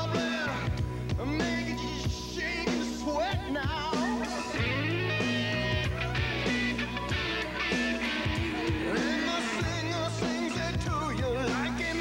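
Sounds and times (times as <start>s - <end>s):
bass notes: 0.0s - 12.0s
guitar: 0.0s - 12.0s
drum beat: 3.4s - 11.9s.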